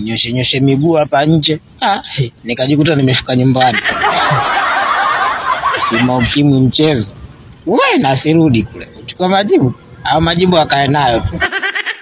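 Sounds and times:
crowd laughing: 3.6 - 6.4, 11.2 - 12.0.

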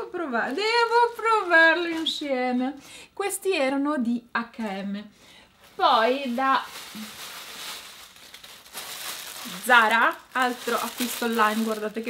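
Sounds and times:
plastic bag crinkling: 0.6 - 2.3, 5.6 - 12.0.

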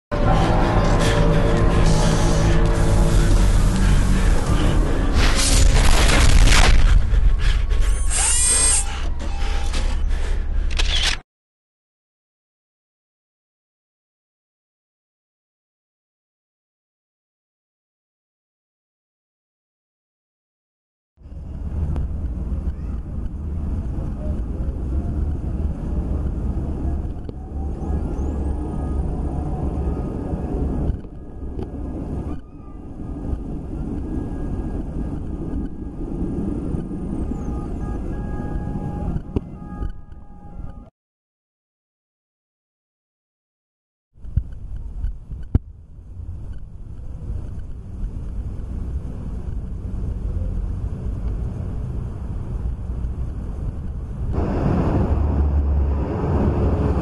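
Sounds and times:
low rumbling music: 0.1 - 7.9, 21.2 - 40.9, 44.4 - 57.0.

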